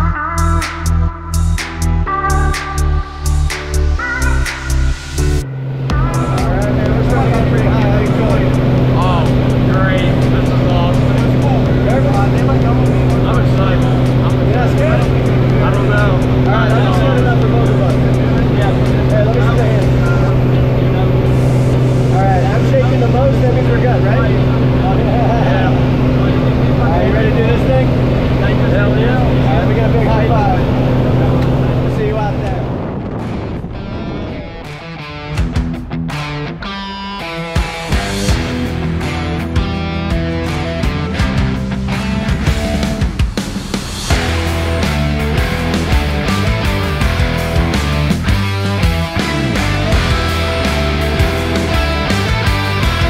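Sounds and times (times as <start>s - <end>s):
propeller plane engine droning: 4.2s - 35.3s, 40.2s - 53.0s
voices talking: 5.6s - 32.9s.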